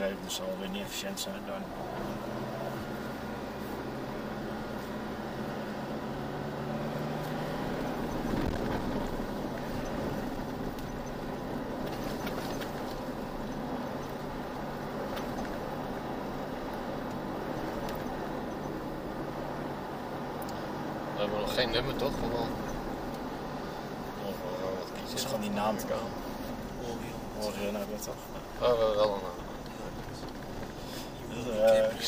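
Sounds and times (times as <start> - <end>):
tyre and road noise: 0.0 - 32.0
vehicle engine drone: 0.0 - 32.0
light rattles: 8.0 - 19.0, 24.8 - 32.0.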